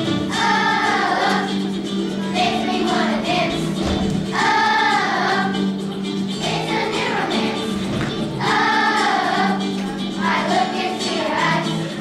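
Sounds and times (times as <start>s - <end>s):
children's choir singing: 0.0s - 12.0s
musical accompaniment: 0.0s - 12.0s.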